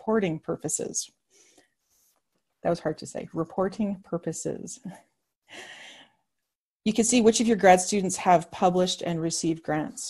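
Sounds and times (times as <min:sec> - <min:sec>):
woman speaking: 0:00.0 - 0:01.1, 0:02.6 - 0:05.0, 0:06.9 - 0:10.0
woman breathing: 0:01.3 - 0:02.2, 0:05.5 - 0:06.2.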